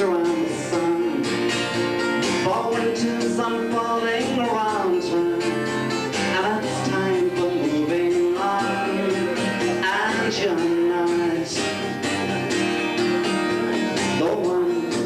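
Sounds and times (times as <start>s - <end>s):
man singing: 0.0s - 12.3s, 13.3s - 15.0s
acoustic guitar strumming: 0.0s - 15.0s.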